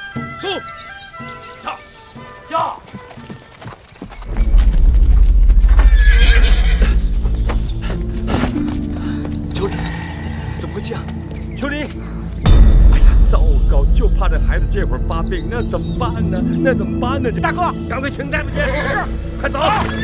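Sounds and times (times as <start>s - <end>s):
horse hoofbeats galloping: 1.1s - 9.6s
dramatic orchestral music: 4.2s - 20.0s
horse neighing: 5.8s - 7.1s.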